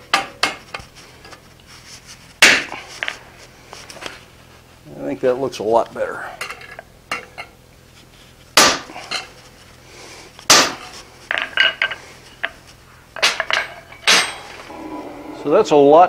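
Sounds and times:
tools clinking on anvil: 0:13.2 - 0:14.6.

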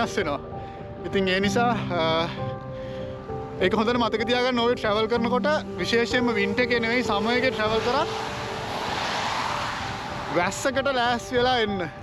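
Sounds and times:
car tyres hissing on wet road: 0:07.2 - 0:10.8.

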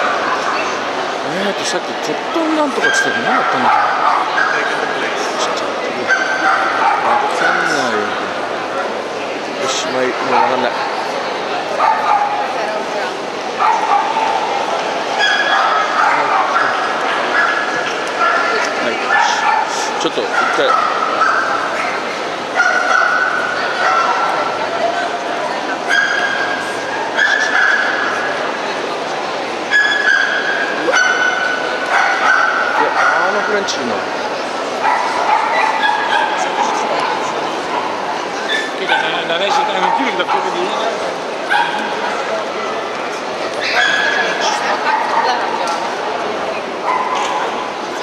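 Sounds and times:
crowd chatter in a hall: 0:00.0 - 0:48.0
dogs yapping and whining: 0:29.7 - 0:33.3.

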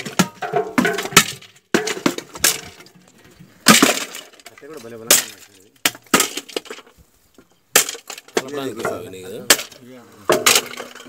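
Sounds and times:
sticks smashing metal pots: 0:00.0 - 0:03.0, 0:03.6 - 0:06.9, 0:07.7 - 0:11.0.

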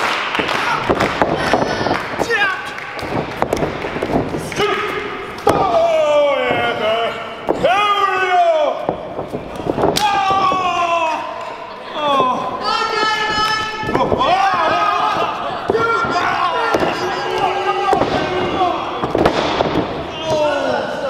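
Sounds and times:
crowd shouting and yelling: 0:04.3 - 0:21.0.

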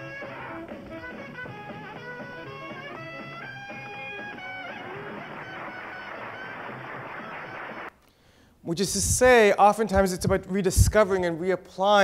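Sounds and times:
hissy old band music: 0:00.0 - 0:07.2.

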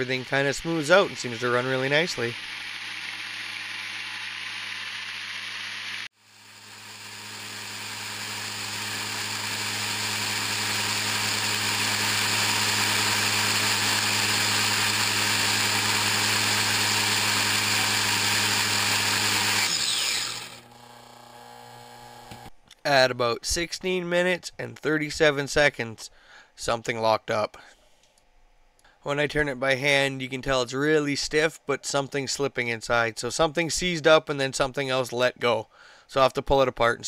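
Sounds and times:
supercharger whine and hum: 0:00.0 - 0:22.6.

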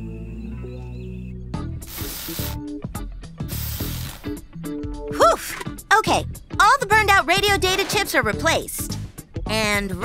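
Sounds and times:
background music: 0:00.0 - 0:10.0
cartoon hissing bursts: 0:01.8 - 0:02.6, 0:03.5 - 0:04.4.

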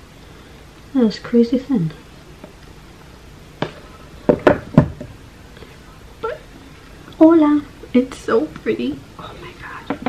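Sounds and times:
knocks and taps on hard surface: 0:03.6 - 0:05.2.

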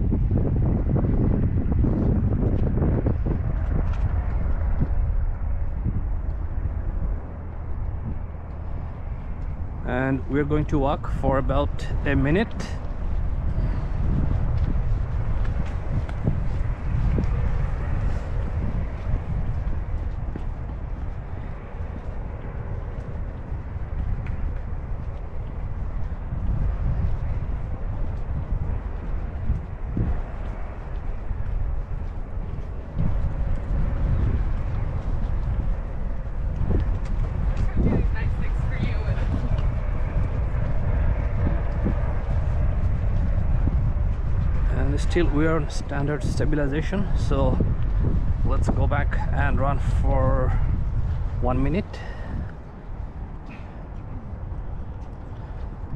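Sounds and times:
wind buffeting microphone: 0:00.0 - 0:55.9
faint voices of passersby: 0:36.8 - 0:41.0.

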